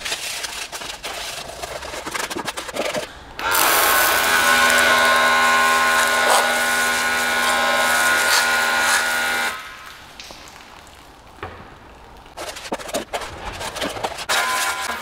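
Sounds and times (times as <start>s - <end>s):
sprayer motor hum: 3.4s - 9.6s
spray hissing: 3.4s - 9.8s.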